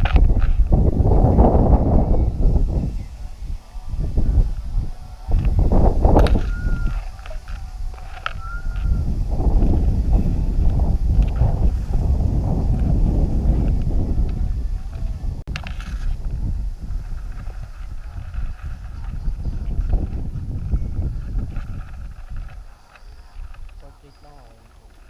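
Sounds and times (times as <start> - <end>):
tall grass rustling: 0.0 - 25.0
wind buffeting microphone: 0.0 - 25.0.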